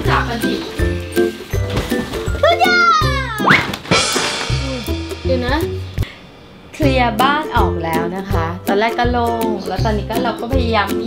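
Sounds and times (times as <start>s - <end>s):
background music: 0.0s - 11.0s
cardboard boxes crashing: 0.6s - 4.8s.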